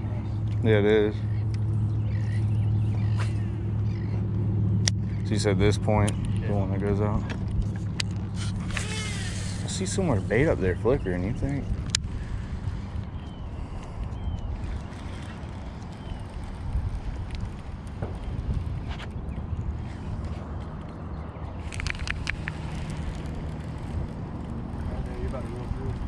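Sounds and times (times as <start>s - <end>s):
low outdoor rumble: 0.0s - 26.0s
fishing reel clicks: 8.0s - 10.1s.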